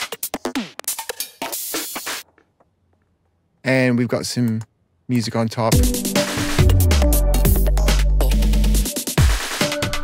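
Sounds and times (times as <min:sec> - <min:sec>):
glitchy electronic drum loop: 0:00.0 - 0:02.2.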